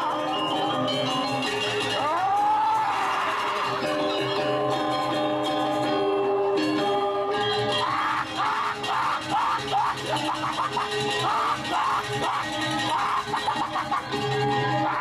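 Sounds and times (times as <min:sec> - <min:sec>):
gamelan metallophone tones: 0:00.0 - 0:07.9.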